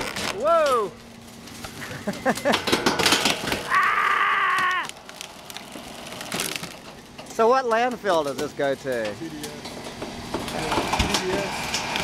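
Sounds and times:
wooden frame cracking: 0.0s - 7.5s.

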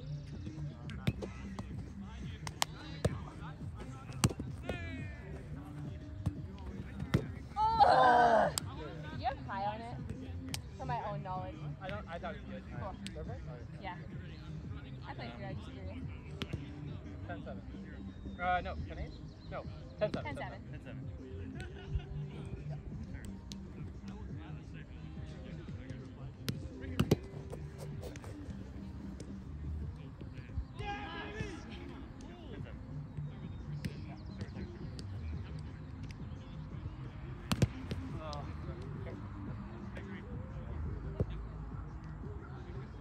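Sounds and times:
murmur of distant voices: 0.0s - 43.0s
ball smacked by hand: 2.4s - 3.2s.

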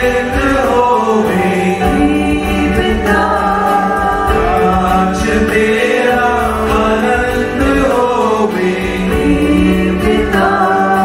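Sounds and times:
choir singing a chant: 0.0s - 11.0s
guitar: 0.0s - 11.0s
keyboard: 0.0s - 11.0s.

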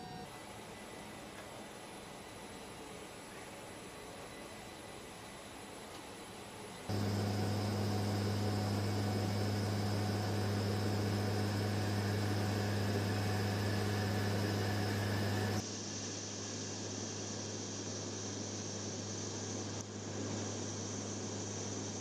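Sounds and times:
aircraft cabin engine drone: 6.7s - 22.0s
steady noise: 6.9s - 19.3s.

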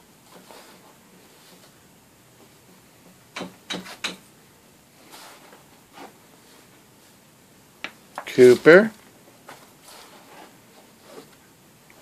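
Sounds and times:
soft rustle: 0.2s - 1.8s, 4.9s - 7.2s, 8.3s - 12.0s.

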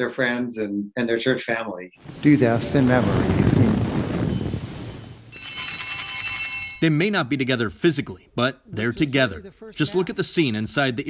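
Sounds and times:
altar bells ringing: 5.3s - 7.0s.

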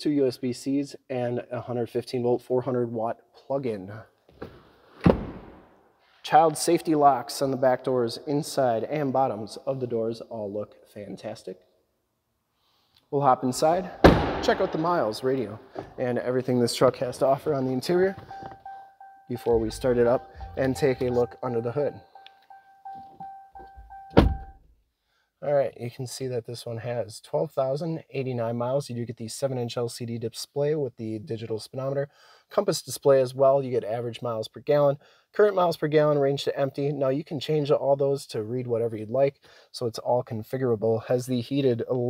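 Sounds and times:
sharp thunk: 4.4s - 5.6s, 14.0s - 14.9s, 24.1s - 24.6s
faint low thumps: 13.9s - 22.0s
electronic warning chime: 17.9s - 24.6s.

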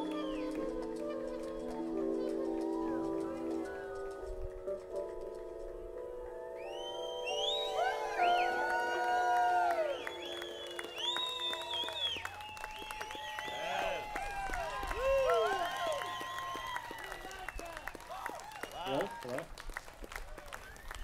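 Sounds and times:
piercing gliding whistles: 0.0s - 4.3s, 6.6s - 14.0s
audience cheering: 6.7s - 19.5s.

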